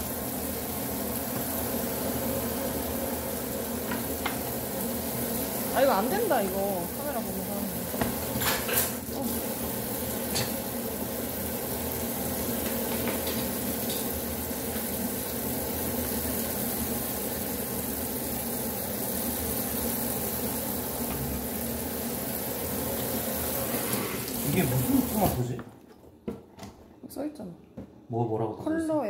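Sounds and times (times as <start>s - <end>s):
water pouring into steel sink: 22.7s - 25.4s.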